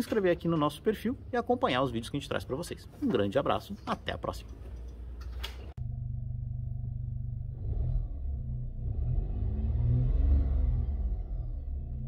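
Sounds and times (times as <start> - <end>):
car engine idling and revving: 5.8 - 12.0.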